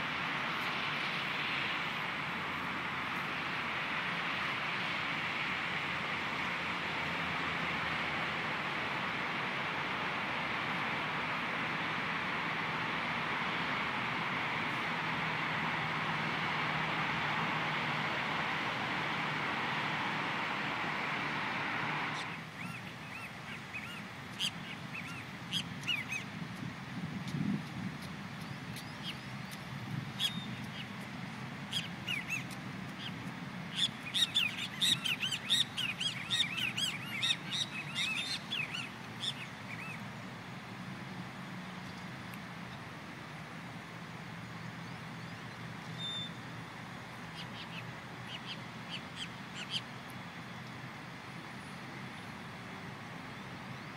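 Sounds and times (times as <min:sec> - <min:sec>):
steady noise: 0:00.0 - 0:23.5
birds chirping: 0:00.0 - 0:26.4, 0:27.2 - 0:42.9, 0:44.4 - 0:53.9.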